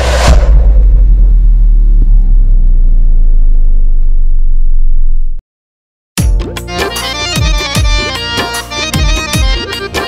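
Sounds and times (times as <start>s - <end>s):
deep bass rumble: 0.0s - 5.4s.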